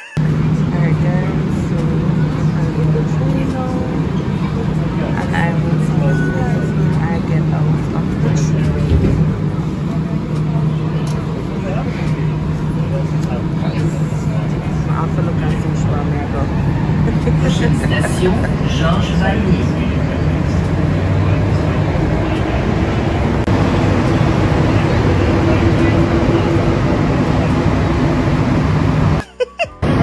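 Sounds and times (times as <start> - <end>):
faint passengers chatter: 0.0 - 29.2
train running noise: 0.0 - 30.0
low hum: 0.2 - 29.2.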